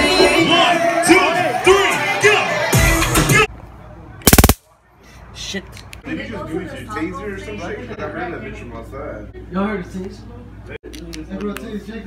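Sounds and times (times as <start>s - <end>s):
taser snapping clicks: 4.3s - 4.6s.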